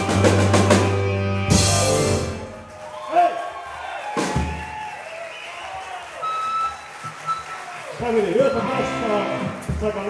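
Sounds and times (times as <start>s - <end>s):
live rock band: 0.0s - 2.7s, 8.5s - 10.0s.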